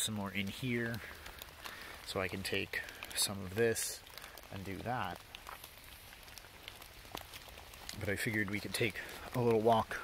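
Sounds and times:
light rain pattering on leaves: 0:00.0 - 0:10.0.

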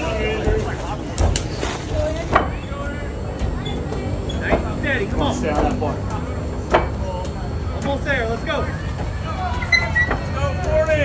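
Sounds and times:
sharp knocks: 0:03.3 - 0:08.0.

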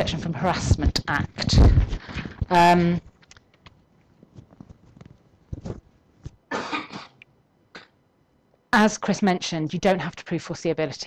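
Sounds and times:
person coughing: 0:06.5 - 0:07.2.

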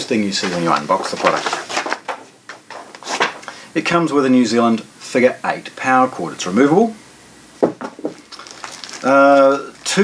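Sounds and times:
paper brochures rustling: 0:00.0 - 0:03.6, 0:08.0 - 0:10.0.

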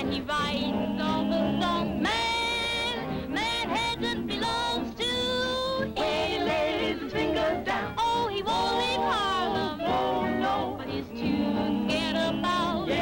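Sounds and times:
swing dance band playing: 0:00.0 - 0:13.0.

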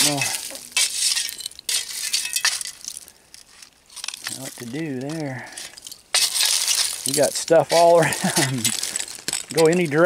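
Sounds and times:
glass clinking: 0:00.0 - 0:03.0
shovel scraping into glass fill: 0:00.0 - 0:03.0, 0:05.7 - 0:07.2.

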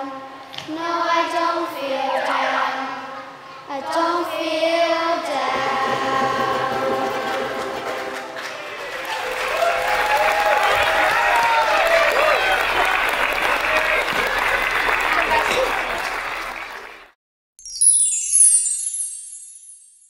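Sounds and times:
whoops and calling voices: 0:02.0 - 0:03.2
held music chord: 0:05.4 - 0:09.0
audience applauding: 0:05.6 - 0:17.2.

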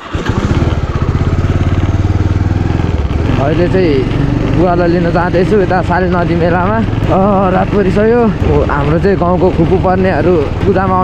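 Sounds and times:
motorcycle engine running: 0:00.0 - 0:11.0
person speaking: 0:03.3 - 0:11.0.

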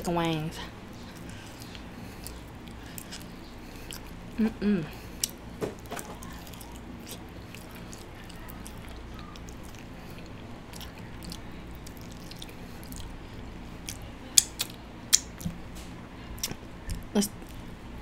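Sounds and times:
steady low hum: 0:00.0 - 0:18.0
chewing and biting food: 0:00.9 - 0:15.6, 0:16.3 - 0:17.7.

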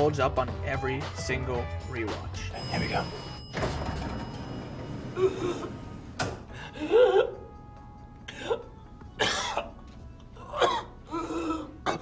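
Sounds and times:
man coughing: 0:08.4 - 0:09.8, 0:10.5 - 0:12.0.

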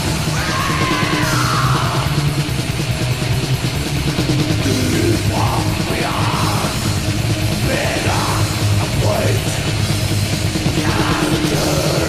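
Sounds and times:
high wailing guitar line: 0:00.0 - 0:03.0, 0:04.4 - 0:12.0
heavy metal music: 0:00.0 - 0:12.0.

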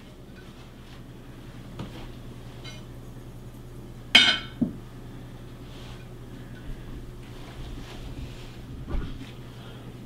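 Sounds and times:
tableware clinking: 0:02.6 - 0:02.9, 0:04.1 - 0:04.7.

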